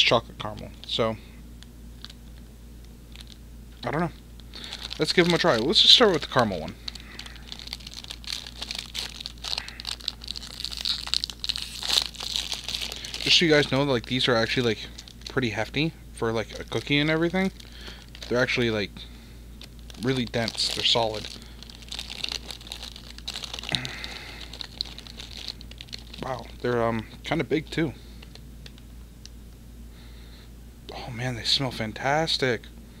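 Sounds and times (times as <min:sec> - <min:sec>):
plastic wrapper crinkling: 0:01.9 - 0:18.9, 0:19.6 - 0:28.9.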